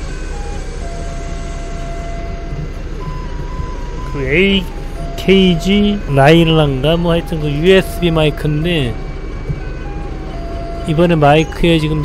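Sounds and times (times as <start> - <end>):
forklift engine running: 0.0 - 12.0.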